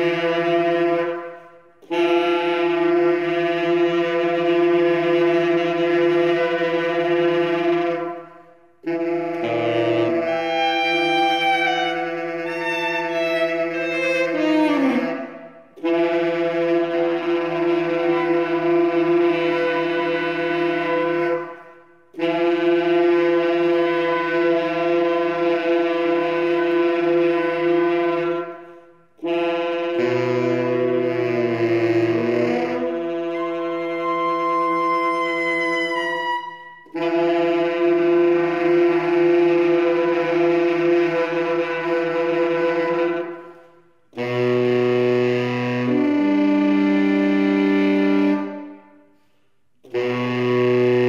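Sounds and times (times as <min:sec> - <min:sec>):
tenor saxophones holding a note: 0:00.0 - 0:48.8, 0:49.8 - 0:51.0.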